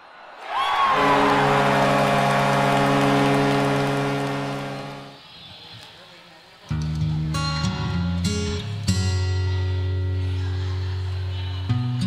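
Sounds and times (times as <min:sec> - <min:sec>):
crowd cheering: 0:00.0 - 0:05.4
hockey goal horn blast: 0:00.8 - 0:05.2.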